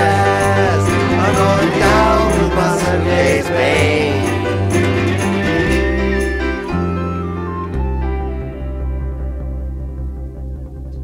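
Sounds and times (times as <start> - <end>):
voices singing together: 0.0 - 6.5
folk-blues band music: 0.0 - 10.7.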